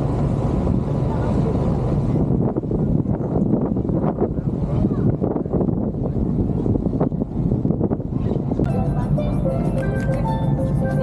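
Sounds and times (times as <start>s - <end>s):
boat engine rumble: 0.0s - 11.0s
music playing: 8.7s - 11.0s.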